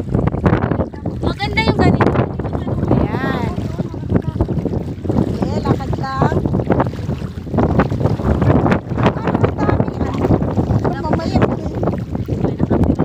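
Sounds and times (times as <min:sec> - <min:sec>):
seawater sloshing: 0:00.0 - 0:13.0
wind buffeting microphone: 0:00.0 - 0:13.0.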